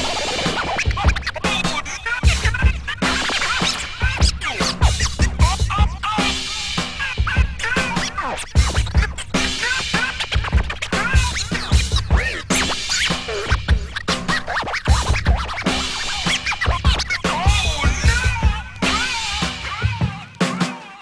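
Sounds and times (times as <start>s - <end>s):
steady drum beat: 0.0s - 21.0s
vinyl record scratching: 0.0s - 21.0s.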